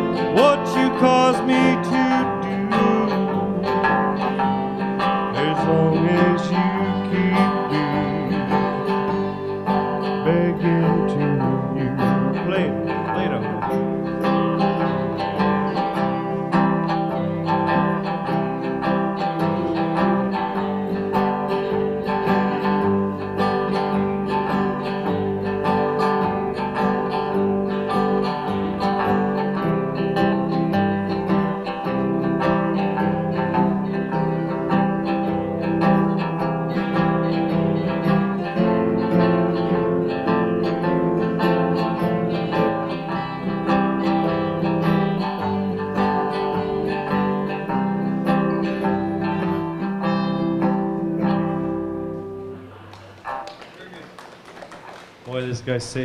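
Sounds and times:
strummed and picked guitar: 0:00.0 - 0:53.7.

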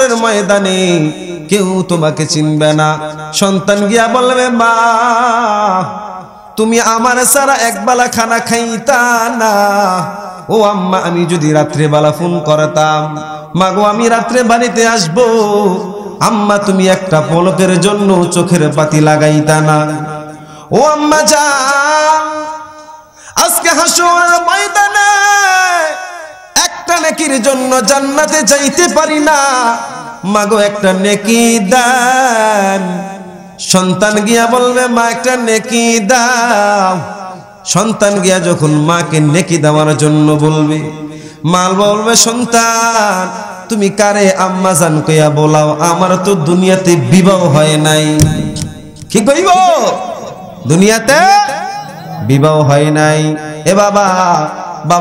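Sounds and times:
man chanting into a microphone: 0:00.0 - 0:55.0.

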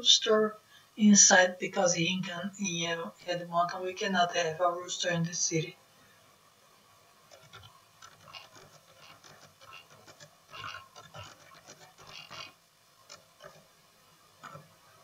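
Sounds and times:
faint keyboard typing: 0:07.3 - 0:13.7.

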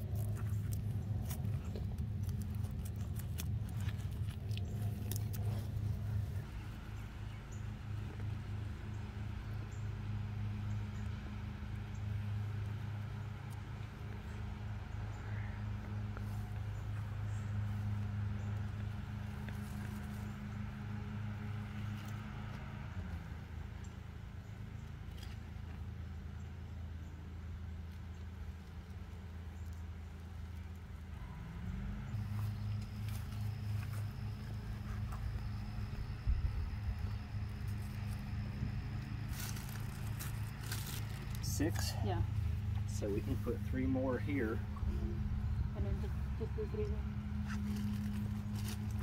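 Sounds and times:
low motor hum: 0:00.0 - 0:49.0
faint scrapes and rustles: 0:47.4 - 0:49.0.

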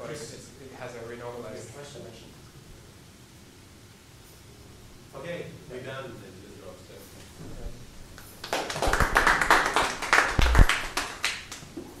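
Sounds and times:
audience applauding: 0:08.4 - 0:11.7.

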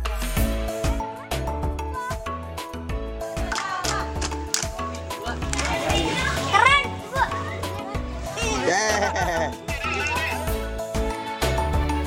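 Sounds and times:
background music: 0:00.0 - 0:12.0
children calling out: 0:03.5 - 0:10.6.

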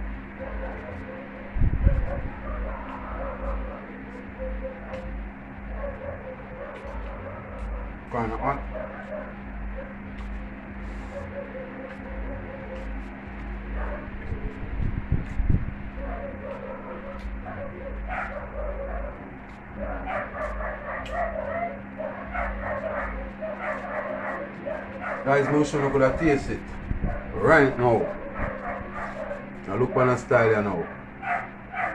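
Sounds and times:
electrical hum: 0:00.0 - 0:31.9
dog whimpering and yipping: 0:01.9 - 0:05.1, 0:16.0 - 0:25.6.

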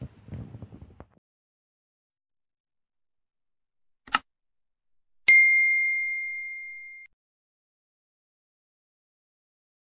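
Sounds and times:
notification bell ding: 0:05.3 - 0:07.1.

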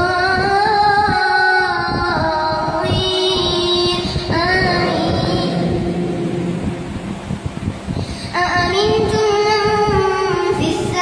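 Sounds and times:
boy chanting recitation into microphone: 0:00.0 - 0:06.8, 0:08.0 - 0:11.0.

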